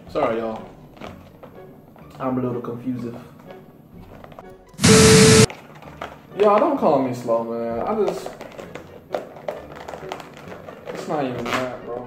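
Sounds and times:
plastic container clicks and crinkles: 8.1 - 12.0.

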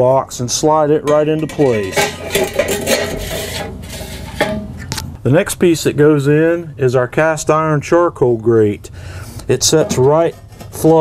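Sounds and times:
grill part scraping into place: 1.1 - 5.1, 9.6 - 11.0.

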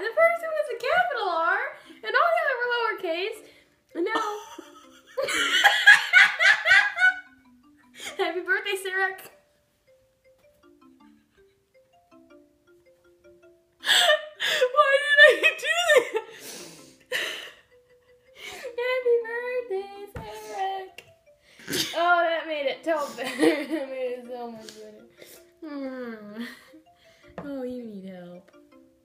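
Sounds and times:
women laughing: 4.2 - 7.2, 13.9 - 16.3, 23.0 - 23.9.

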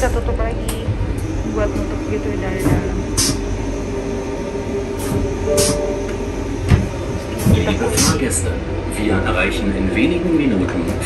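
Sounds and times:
train rumbling inside carriage: 0.0 - 11.0.

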